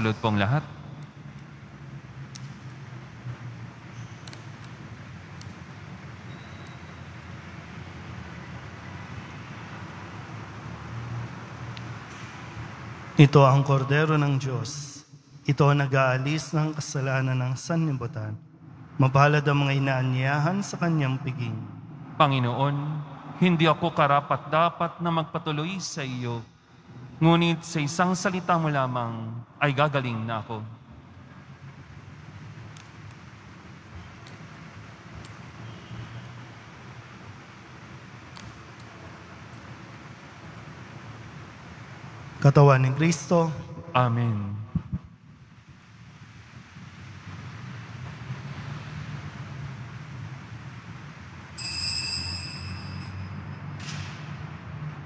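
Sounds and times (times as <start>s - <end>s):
low room hum with hiss: 0.0s - 55.0s.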